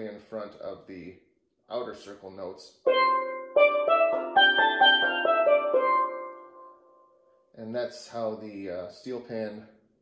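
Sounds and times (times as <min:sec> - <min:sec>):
steel pan ascending scale: 0:02.9 - 0:06.4.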